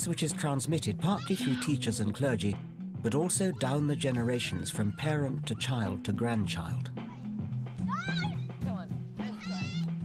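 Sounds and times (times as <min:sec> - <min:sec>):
soft background music: 0:00.0 - 0:10.0
young children calling: 0:01.0 - 0:01.8, 0:03.4 - 0:05.9, 0:07.0 - 0:08.6, 0:09.2 - 0:10.0.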